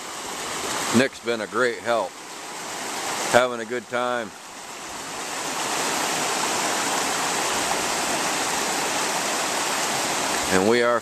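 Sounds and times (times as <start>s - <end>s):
creek water rushing over rocks: 0.0s - 11.0s.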